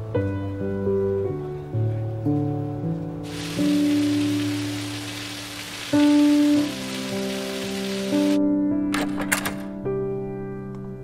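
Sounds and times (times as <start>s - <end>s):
background music: 0.0s - 11.0s
fountain water splashing: 3.2s - 8.4s.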